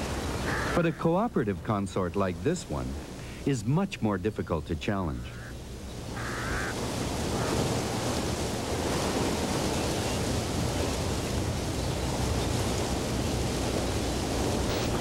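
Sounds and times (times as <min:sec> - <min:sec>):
steady rushing noise: 0:05.3 - 0:15.0.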